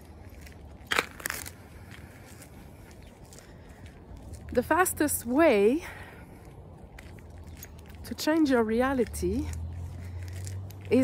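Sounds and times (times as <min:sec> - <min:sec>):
crackling crunch: 0:00.0 - 0:11.0.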